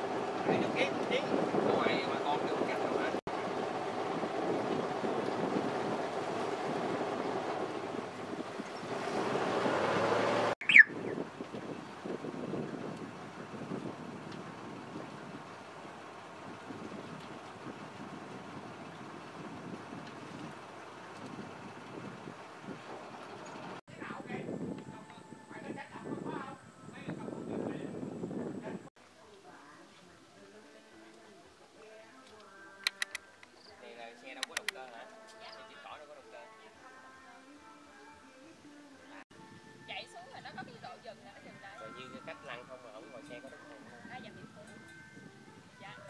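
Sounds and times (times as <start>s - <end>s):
wind and water noise: 0.0s - 32.0s, 39.3s - 46.0s
indistinct voices: 29.6s - 33.6s.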